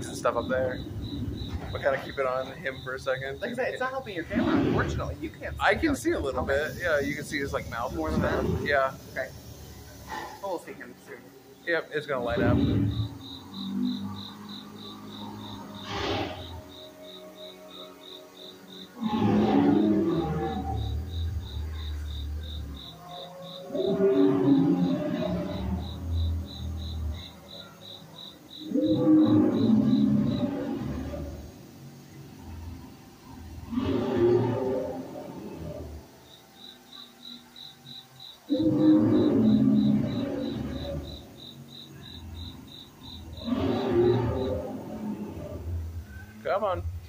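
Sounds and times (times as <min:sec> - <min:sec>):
pulsing high insect-like chirp: 0:00.0 - 0:47.0
recorded dinosaur roars: 0:04.2 - 0:09.3, 0:11.7 - 0:16.9, 0:18.9 - 0:36.3, 0:38.5 - 0:47.0.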